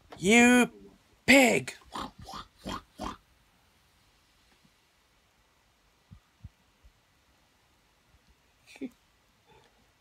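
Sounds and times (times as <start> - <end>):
pig-like oinks: 1.8 - 3.2.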